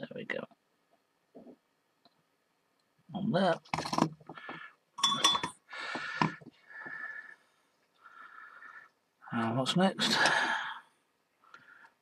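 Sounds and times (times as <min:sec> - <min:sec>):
tools rustling and handling: 0:03.7 - 0:06.5.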